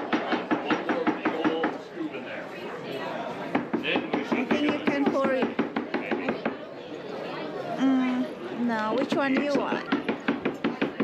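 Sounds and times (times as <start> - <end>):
rapid sharp knocks: 0.0 - 1.8, 3.5 - 6.6, 9.1 - 11.0
people talking: 7.8 - 9.9.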